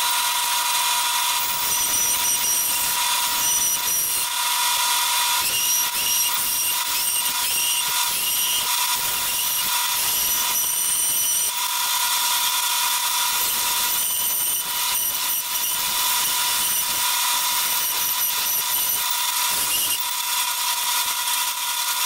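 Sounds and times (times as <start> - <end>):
bandsaw whining: 0.0 - 22.0.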